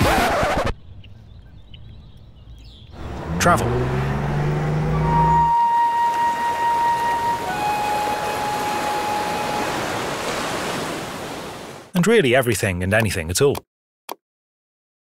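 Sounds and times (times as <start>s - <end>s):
sea surf on rocky shore: 3.0s - 11.9s.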